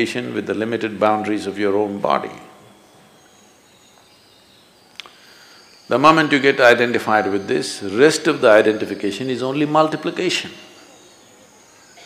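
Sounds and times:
high insect calls: 2.1s - 12.0s.

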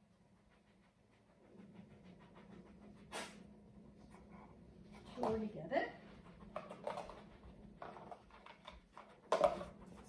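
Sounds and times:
dog panting: 0.0s - 5.3s.

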